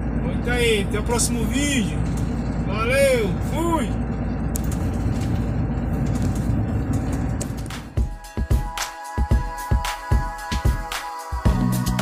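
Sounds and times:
truck engine and road rumble: 0.0s - 8.0s.

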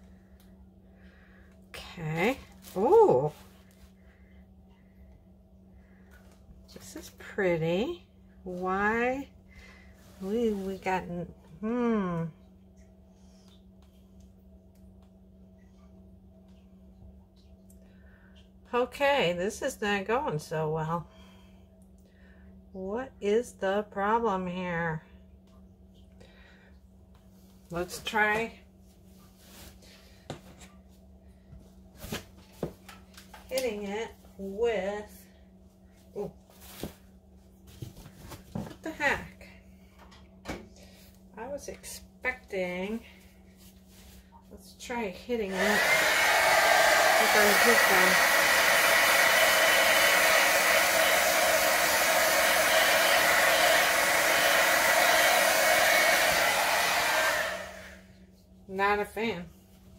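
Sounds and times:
steady low hum: 0.0s - 59.9s
hot-air blower running: 44.9s - 58.2s.

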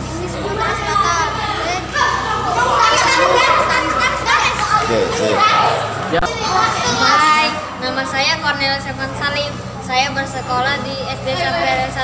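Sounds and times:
children talking and calling out: 0.0s - 12.0s
boy speaking: 0.2s - 12.0s.

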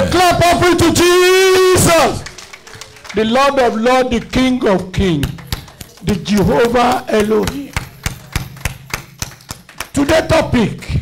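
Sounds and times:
sharp handclaps: 1.2s - 10.7s.

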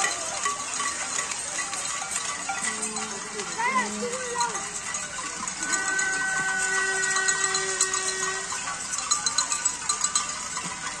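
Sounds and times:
crowd noise hiss: 0.0s - 11.0s
horn-like noisemaker notes: 5.6s - 8.6s.

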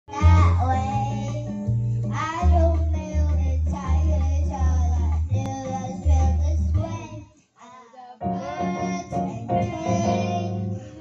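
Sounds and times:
pop backing track: 0.1s - 7.4s, 8.2s - 11.0s
girl singing into microphone: 0.1s - 11.0s.

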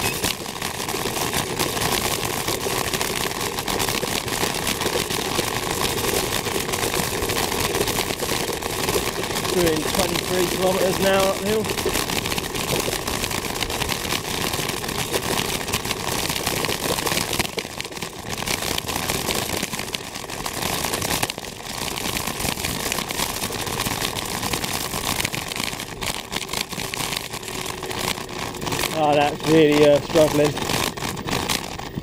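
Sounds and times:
scooter jolts and rattles: 0.0s - 32.0s
tyre and road noise: 0.0s - 32.0s.

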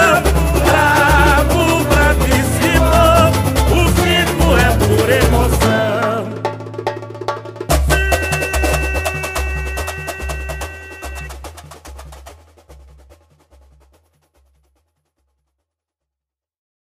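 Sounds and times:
low drums beating: 0.0s - 6.1s.

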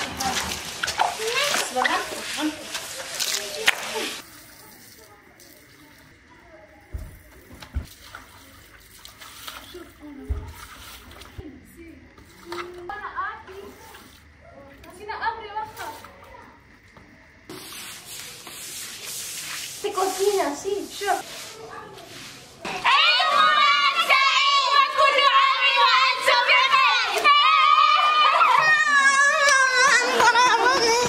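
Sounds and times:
hose running: 0.0s - 5.8s, 17.5s - 23.0s
water splashing on tiled floor: 0.0s - 6.2s, 7.0s - 11.5s, 15.6s - 22.7s
girls singing and shouting: 22.7s - 31.0s.

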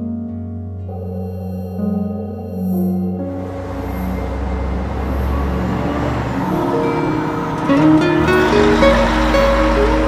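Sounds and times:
background music stepping notes: 0.0s - 10.0s
low rushing noise: 1.0s - 9.7s.

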